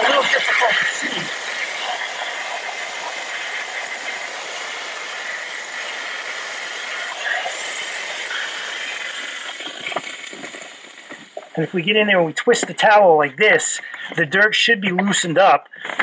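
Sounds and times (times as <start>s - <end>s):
steam cleaner hissing: 0.0s - 14.4s.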